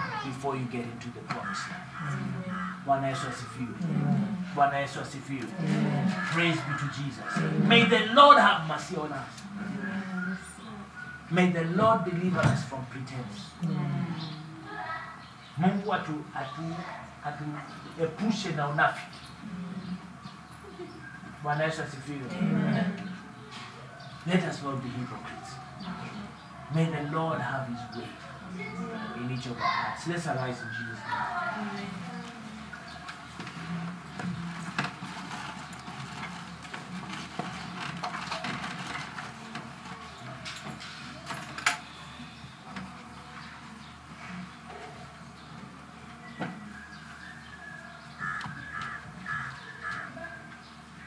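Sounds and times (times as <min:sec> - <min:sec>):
chairs scraping and knocking: 0:32.9 - 0:41.9.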